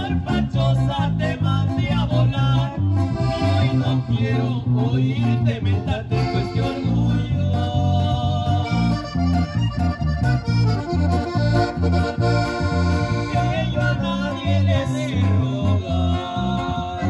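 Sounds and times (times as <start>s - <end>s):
button accordion melody: 0.0s - 17.0s
electric bass: 0.0s - 17.0s.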